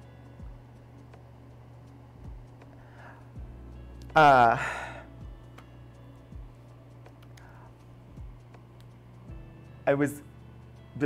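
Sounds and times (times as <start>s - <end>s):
lo-fi background music: 0.0s - 11.0s.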